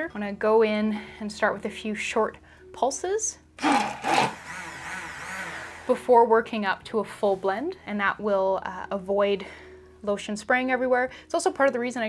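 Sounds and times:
immersion blender whirring: 0:03.6 - 0:06.0.

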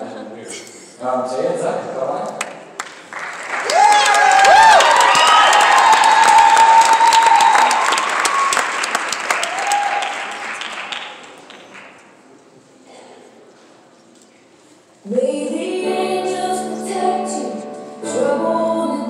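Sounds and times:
audience applauding and cheering: 0:02.4 - 0:12.0
high-pitched whoops: 0:03.6 - 0:08.7, 0:09.4 - 0:10.3.

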